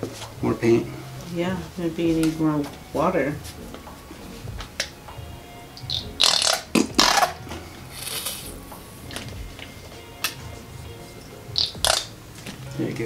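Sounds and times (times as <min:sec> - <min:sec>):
squeeze bottle sputtering paint: 0:07.9 - 0:08.6.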